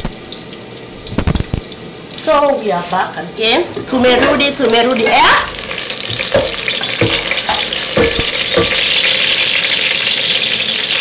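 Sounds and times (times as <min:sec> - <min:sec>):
onions sizzling in hot oil: 0:00.0 - 0:11.0
wooden spoon knocking on pot: 0:03.7 - 0:09.2.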